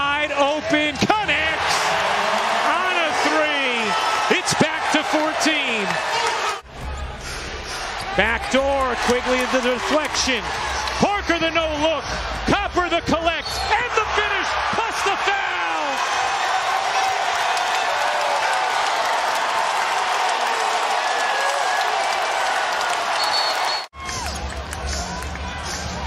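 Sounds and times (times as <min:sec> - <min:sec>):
quiet arena ambience: 0:00.0 - 0:26.0
crowd cheering and whooping: 0:01.2 - 0:11.1, 0:13.5 - 0:26.0.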